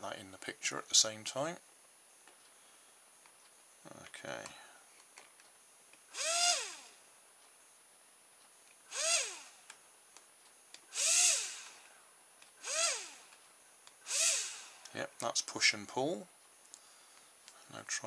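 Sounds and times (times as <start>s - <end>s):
toy electric motor whirring: 6.1s - 7.0s, 8.8s - 9.7s, 10.9s - 11.9s, 12.6s - 13.4s, 14.0s - 15.0s.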